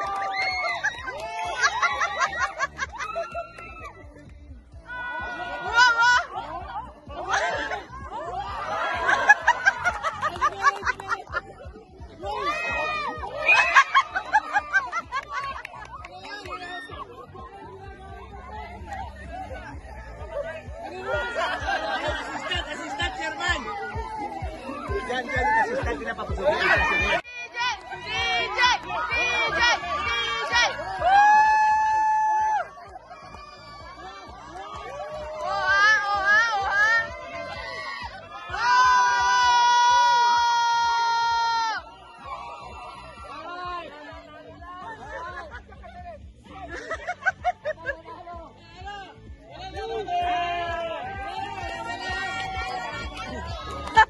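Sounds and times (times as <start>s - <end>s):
people laughing: 0.0s - 4.3s, 5.3s - 27.2s, 27.9s - 39.9s, 42.4s - 48.6s, 51.5s - 54.0s
crowd shouting and cheering: 0.0s - 54.0s.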